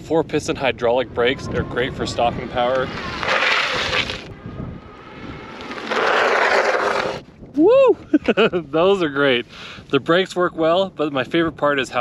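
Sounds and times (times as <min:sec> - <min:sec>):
bike tires skidding on asphalt: 0:01.9 - 0:07.3.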